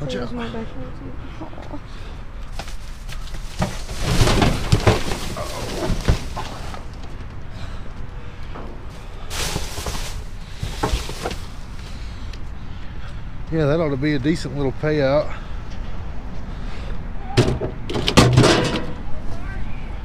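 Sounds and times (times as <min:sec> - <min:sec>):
trash bags and boxes rustling: 0:02.5 - 0:07.0, 0:08.9 - 0:12.0.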